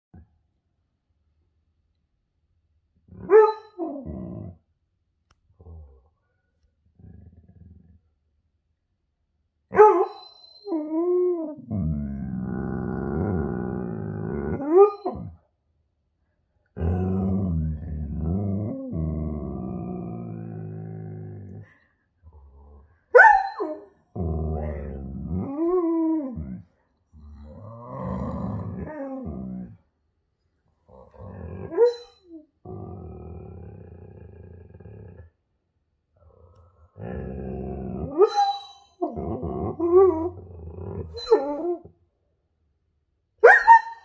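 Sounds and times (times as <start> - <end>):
dog howling and growling: 3.1 - 4.6, 9.7 - 15.4, 16.7 - 29.9, 30.8 - 35.4, 36.9 - 42.0.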